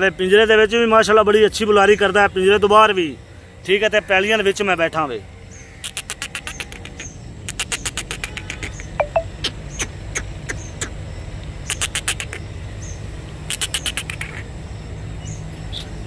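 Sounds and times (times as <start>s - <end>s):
animal rapid clicking calls: 5.8s - 11.0s, 11.6s - 12.4s, 13.4s - 14.5s.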